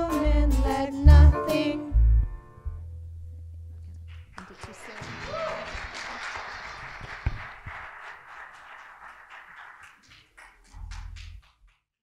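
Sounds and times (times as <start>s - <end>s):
crowd applauding: 4.1s - 11.9s
person whooping: 5.1s - 5.9s.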